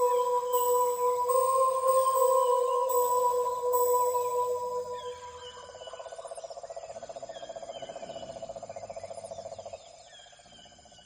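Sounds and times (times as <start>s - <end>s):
fast pulsing trill: 0.0s - 5.7s.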